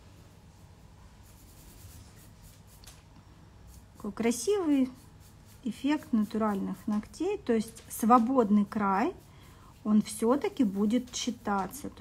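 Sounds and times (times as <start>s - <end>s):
brush scratching fingernail: 1.2s - 3.0s, 3.7s - 12.0s.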